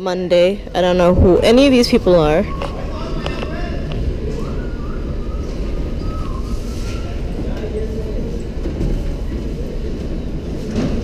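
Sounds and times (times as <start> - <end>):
low background rumble: 0.0 - 6.4.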